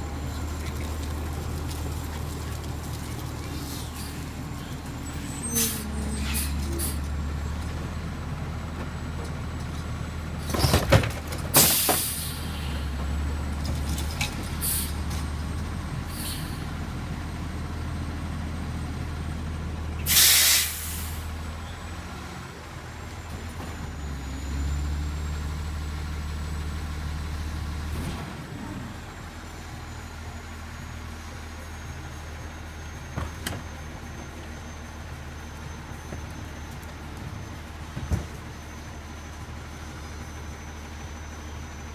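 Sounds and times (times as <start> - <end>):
garbage truck diesel engine running: 0.0 - 41.9
air brake hiss: 11.6 - 12.8, 14.6 - 15.0, 16.1 - 16.7, 20.1 - 21.3.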